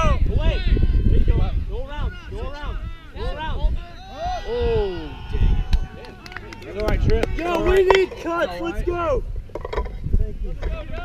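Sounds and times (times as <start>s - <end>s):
players shouting: 0.0s - 9.2s.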